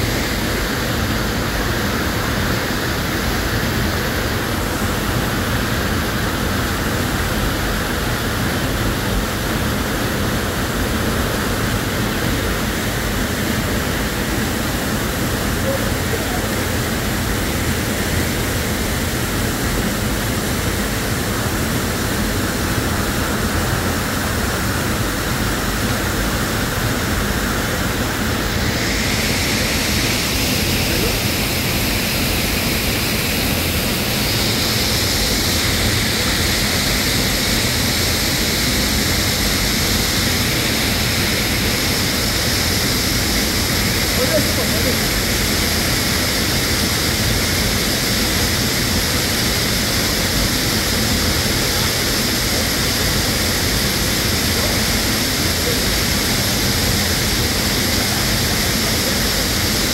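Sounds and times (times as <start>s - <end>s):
waterfall roaring: 0.0s - 59.9s.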